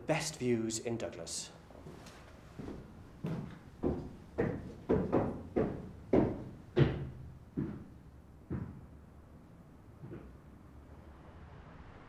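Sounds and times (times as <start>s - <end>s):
footsteps climbing stairs: 1.8s - 9.0s, 10.0s - 10.4s.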